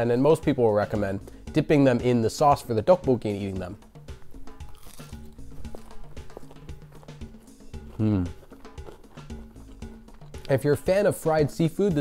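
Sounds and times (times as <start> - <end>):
background music with light beat: 0.0 - 12.0.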